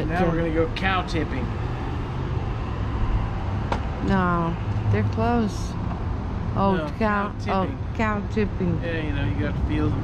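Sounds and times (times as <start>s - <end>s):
low rumble of street traffic: 0.0s - 10.0s.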